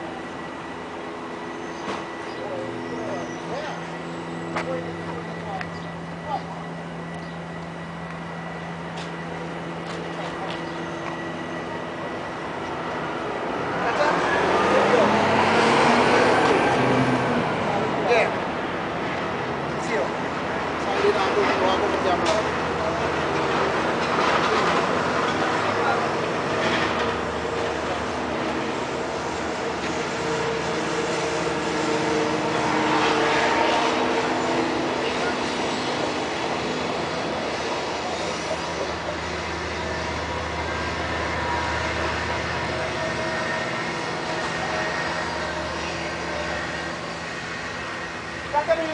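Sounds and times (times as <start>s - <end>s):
steady mechanical drone: 0.0s - 48.9s.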